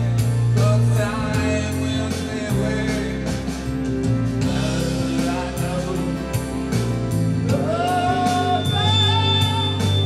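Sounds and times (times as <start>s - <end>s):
backing track with steady beat: 0.0s - 10.0s
man singing into a microphone: 0.4s - 3.7s, 4.4s - 6.8s, 7.4s - 10.0s.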